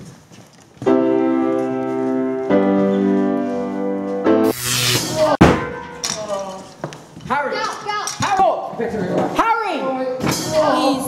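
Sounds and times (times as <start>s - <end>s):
loud noisy burst: 4.5s - 5.4s.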